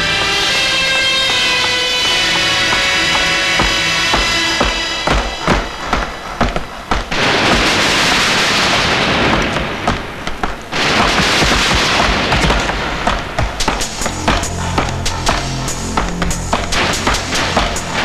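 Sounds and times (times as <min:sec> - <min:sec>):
background music: 0:00.0 - 0:08.5, 0:10.7 - 0:18.0
rapid gunfire: 0:00.0 - 0:15.5.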